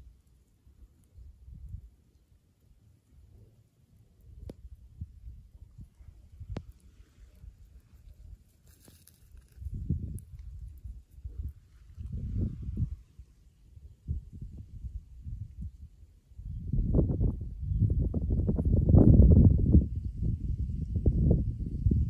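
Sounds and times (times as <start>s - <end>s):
wind buffeting microphone: 4.3s - 7.6s, 9.4s - 13.2s, 13.8s - 22.0s.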